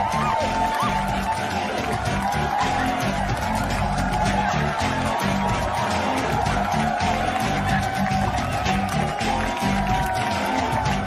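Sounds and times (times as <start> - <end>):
rhythmic bass line: 0.0 - 11.0.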